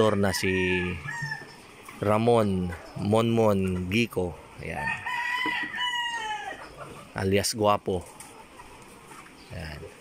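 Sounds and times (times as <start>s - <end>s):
rooster crowing: 0.0s - 1.6s, 4.8s - 6.6s
chickens clucking: 0.0s - 10.0s.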